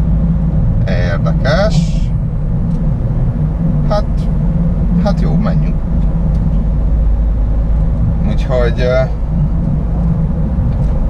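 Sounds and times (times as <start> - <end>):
engine and road rumble in cabin: 0.0 - 11.0.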